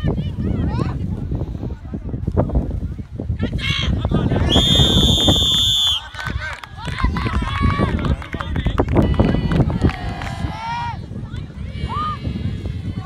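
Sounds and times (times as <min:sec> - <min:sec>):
wind rumbling on microphone: 0:00.0 - 0:13.0
shrill whistle blast: 0:04.5 - 0:06.1.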